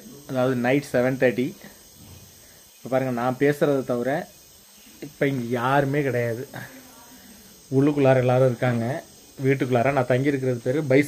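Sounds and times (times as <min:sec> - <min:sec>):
man talking: 0:00.0 - 0:01.7, 0:02.8 - 0:04.3, 0:05.0 - 0:06.7, 0:07.7 - 0:11.0
crickets chirping: 0:00.0 - 0:11.0.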